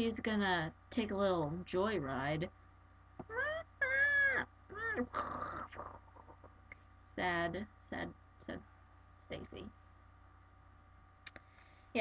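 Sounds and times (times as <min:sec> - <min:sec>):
girl squealing: 0:03.3 - 0:05.6.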